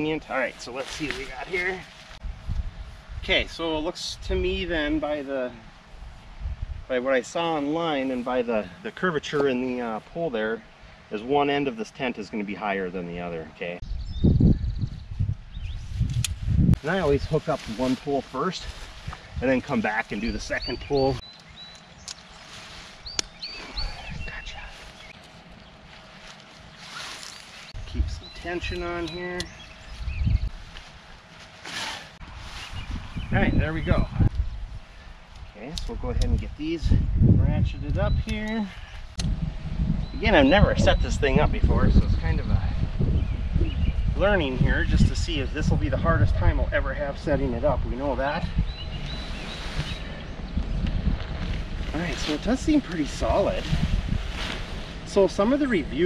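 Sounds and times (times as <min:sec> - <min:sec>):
wind buffeting microphone: 0:00.0 - 0:07.0, 0:13.8 - 0:22.0, 0:22.7 - 0:25.8, 0:27.7 - 0:31.2, 0:32.2 - 0:56.0
tent pole clicks: 0:16.0 - 0:16.4, 0:21.3 - 0:22.5, 0:23.1 - 0:23.5
birds whistling: 0:20.2 - 0:25.8, 0:26.8 - 0:30.5, 0:48.2 - 0:50.8.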